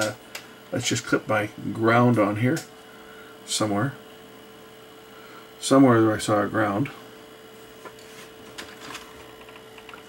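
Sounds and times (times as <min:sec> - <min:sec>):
steady faint hum: 0:00.0 - 0:10.0.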